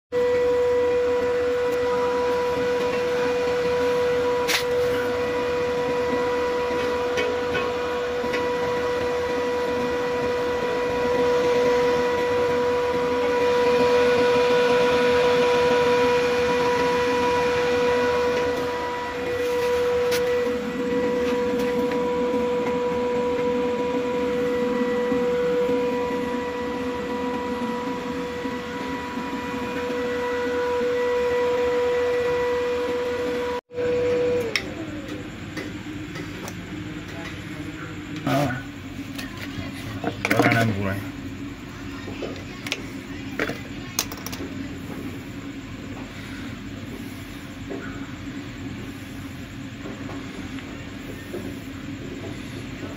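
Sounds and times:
inverter electrical hum: 0:00.1 - 0:52.9.

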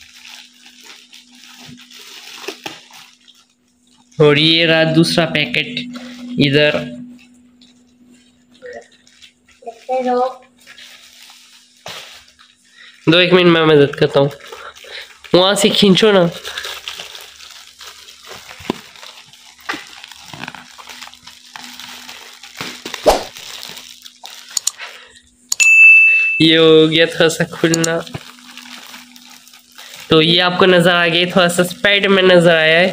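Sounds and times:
plastic bag crinkling and tearing: 0:00.0 - 0:04.7, 0:07.6 - 0:25.1, 0:26.4 - 0:32.9
person speaking: 0:04.2 - 0:07.6, 0:09.6 - 0:10.5, 0:15.3 - 0:16.6, 0:26.1 - 0:29.1, 0:30.0 - 0:32.9
electronic ding chime: 0:04.8 - 0:07.3, 0:25.6 - 0:27.0.

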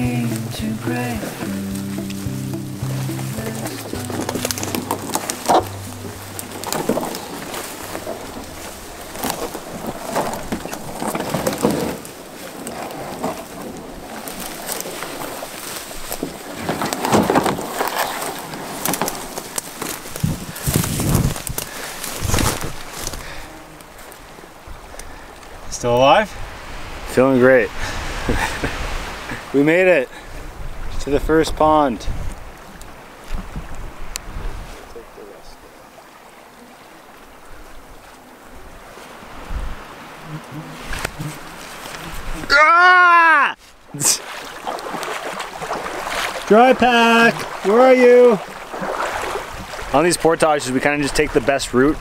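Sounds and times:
person speaking: 0:00.0 - 0:08.0, 0:42.5 - 0:44.2
background music: 0:00.0 - 0:10.2
branches scraping canoe hull: 0:00.0 - 0:25.6, 0:26.5 - 0:30.4, 0:36.5 - 0:42.7, 0:43.6 - 0:52.0
rustling: 0:00.1 - 0:24.2
twig cracks: 0:17.8 - 0:23.2.

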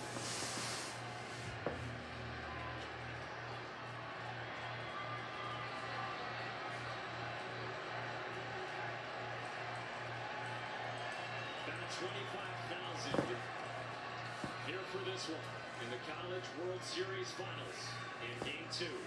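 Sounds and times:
stadium crowd noise: 0:00.0 - 0:19.0.

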